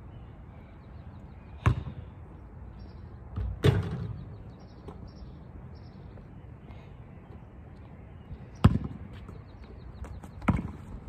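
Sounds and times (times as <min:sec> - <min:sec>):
basketball hitting hard surfaces: 0:10.4 - 0:10.8.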